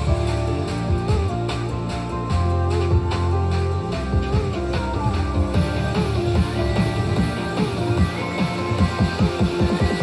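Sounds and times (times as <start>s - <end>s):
guitar music with strong bass: 0.0s - 10.0s.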